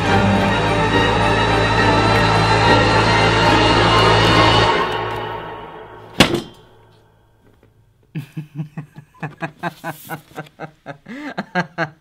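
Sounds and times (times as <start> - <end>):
loud thump: 6.1 - 6.8
man laughing: 8.1 - 12.0.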